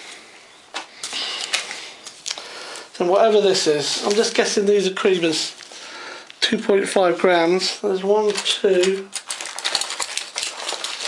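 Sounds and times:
packaging rustling: 0.9s - 5.9s, 8.0s - 11.0s
plastic pack set down: 4.0s - 4.6s, 8.2s - 11.0s.

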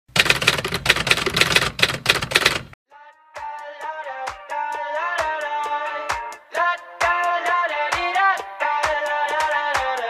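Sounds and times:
typewriter keystrokes clattering: 0.1s - 2.8s
pop song with plucked notes: 2.9s - 10.0s.

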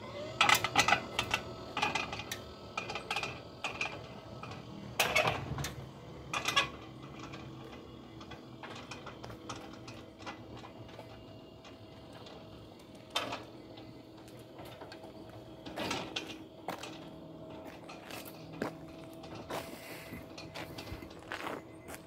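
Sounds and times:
gate motor humming: 0.0s - 22.0s.

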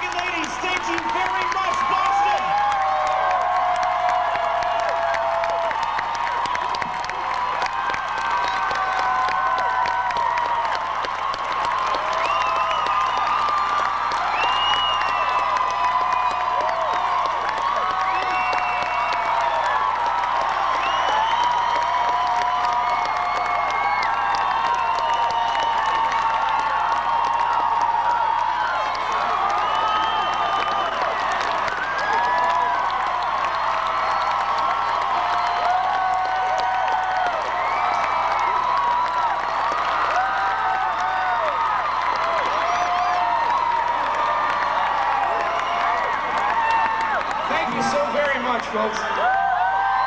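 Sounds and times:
high-pitched screams and whoops: 0.0s - 48.4s, 49.0s - 50.0s
crowd cheering and applauding: 0.0s - 50.0s.

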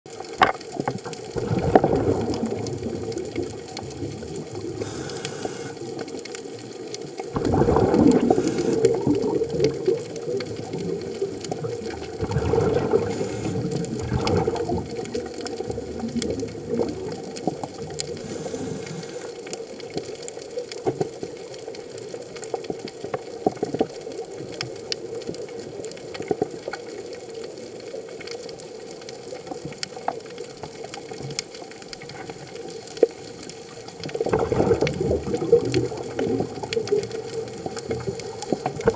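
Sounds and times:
faint clicks: 0.1s - 38.9s
scuba regulator bubbling: 0.1s - 38.9s
underwater hiss: 1.3s - 20.2s.

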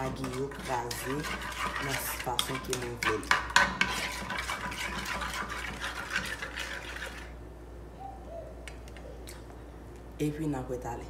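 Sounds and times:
metal spoon beating eggs in pan: 0.0s - 7.4s.

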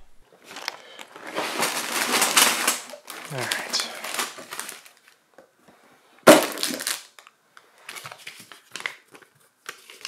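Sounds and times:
plastic bag crinkling: 0.4s - 5.2s, 6.3s - 7.3s
bags dropped on table thump: 6.3s - 7.0s.

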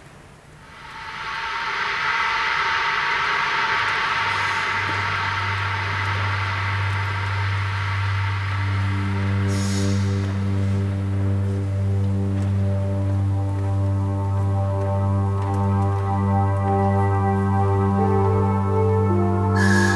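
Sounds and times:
low steady drone: 0.3s - 19.9s
dense electronic wash: 0.5s - 19.9s
high-pitched tone with overtones: 0.6s - 13.0s, 16.0s - 19.9s.

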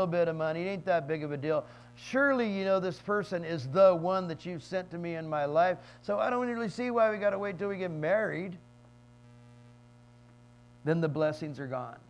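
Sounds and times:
man speaking: 0.0s - 8.6s, 10.8s - 12.0s
electrical mains hum: 0.0s - 12.0s.

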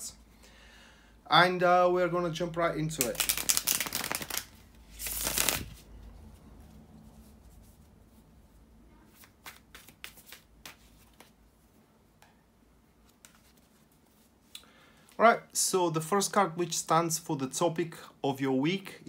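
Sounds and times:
cards riffle-shuffled: 3.0s - 5.8s, 9.1s - 11.4s, 13.0s - 14.3s.

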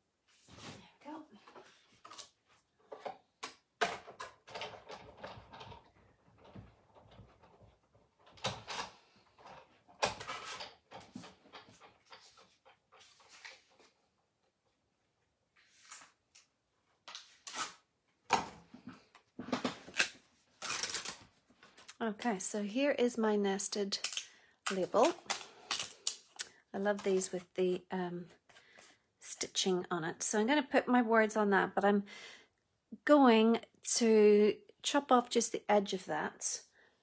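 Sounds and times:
clicks and knocks of handling: 1.5s - 13.9s.

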